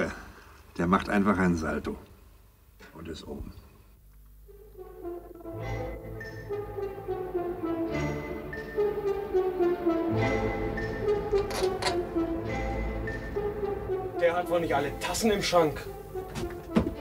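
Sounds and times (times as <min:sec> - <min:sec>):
orchestral film score with brass: 0:04.5 - 0:17.0
heavy low beats: 0:09.8 - 0:17.0.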